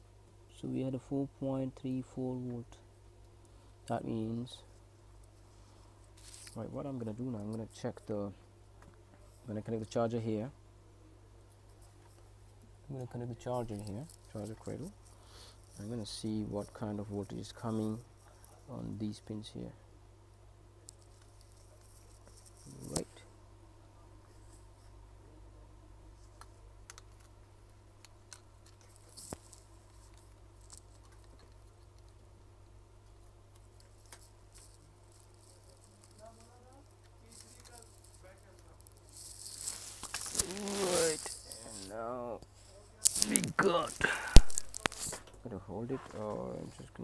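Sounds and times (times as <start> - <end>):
low electrical hum: 0.0 - 47.0
gloved hands rustling and scraping: 4.8 - 7.6, 13.4 - 18.9, 21.0 - 23.2, 33.5 - 47.0.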